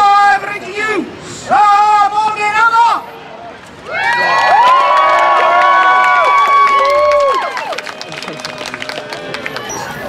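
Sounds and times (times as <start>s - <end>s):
crowd cheering and shouting: 3.8s - 10.0s.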